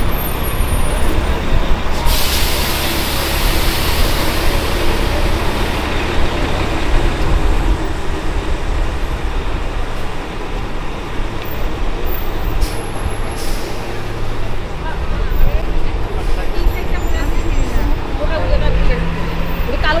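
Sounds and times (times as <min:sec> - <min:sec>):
traffic rumble: 0:00.0 - 0:20.0.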